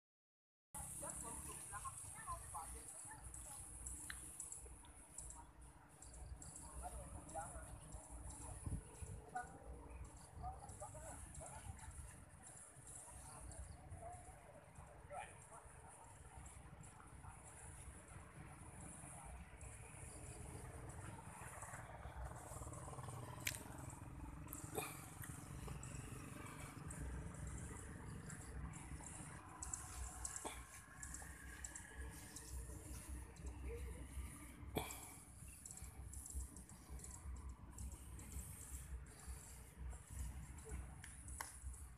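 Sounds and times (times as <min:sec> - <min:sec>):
faint wind rumble on microphone: 0:07.9 - 0:10.8
low uneven rumble: 0:15.4 - 0:41.9
faint high clicks: 0:20.6 - 0:33.6, 0:39.9 - 0:41.9.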